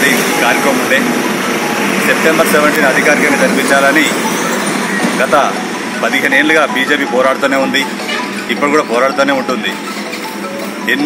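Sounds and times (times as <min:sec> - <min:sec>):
man speaking: 0:00.0 - 0:01.2, 0:01.9 - 0:04.2, 0:05.2 - 0:09.8
steady background noise: 0:00.0 - 0:11.0.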